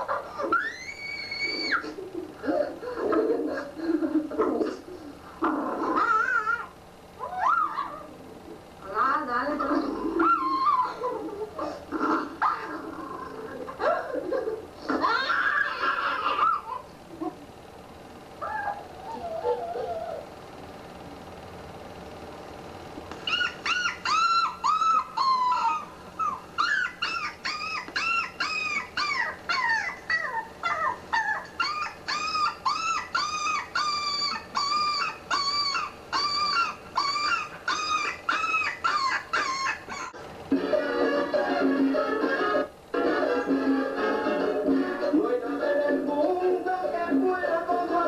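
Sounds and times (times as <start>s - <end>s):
small dog whining: 0.0s - 2.7s, 5.4s - 8.4s, 9.7s - 14.0s, 14.9s - 17.4s, 18.4s - 20.3s, 23.2s - 40.2s.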